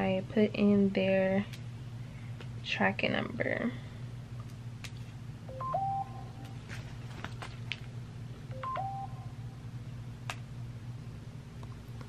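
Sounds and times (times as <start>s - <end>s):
electronic beep tone figure: 5.5s - 6.4s, 8.5s - 9.3s.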